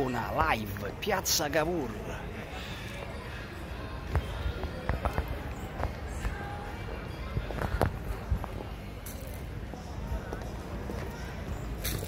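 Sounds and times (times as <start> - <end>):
low street background noise: 0.0 - 12.0.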